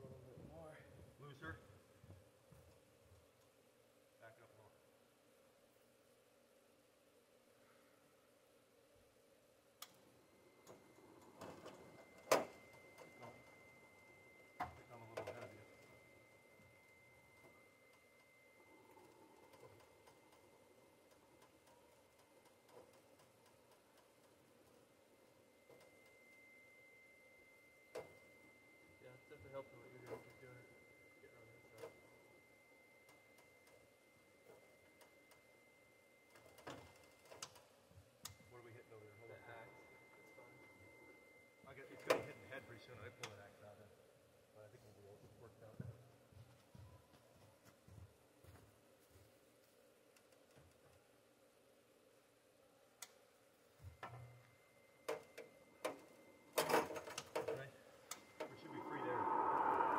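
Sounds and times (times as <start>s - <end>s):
faint high whine: 0.0s - 47.5s, 48.4s - 59.9s.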